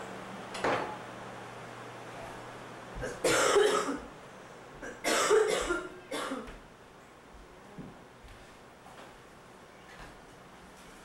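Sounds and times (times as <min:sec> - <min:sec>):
person coughing: 0:03.0 - 0:04.1, 0:04.8 - 0:06.6.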